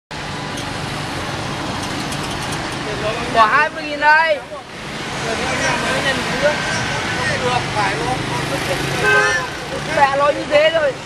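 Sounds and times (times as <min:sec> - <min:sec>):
motorbikes and cars passing: 0:00.2 - 0:11.0.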